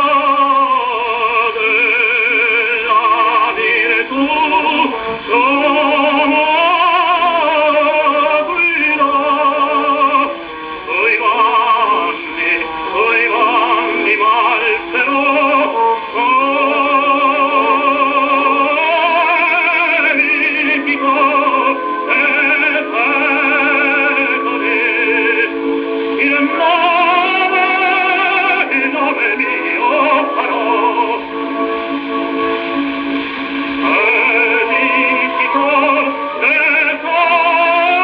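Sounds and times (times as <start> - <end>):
operatic baritone singing: 0.0 - 38.0
orchestra: 0.0 - 38.0.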